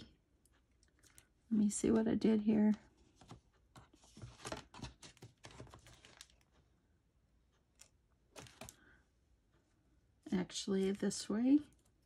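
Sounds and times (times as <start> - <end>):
cardstock pieces clicking and rustling: 3.2 - 6.4.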